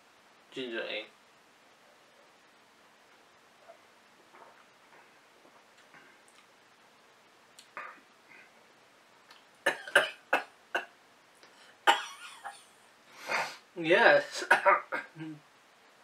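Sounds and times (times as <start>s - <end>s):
man coughing: 9.7s - 10.9s, 11.9s - 12.6s, 14.3s - 15.4s.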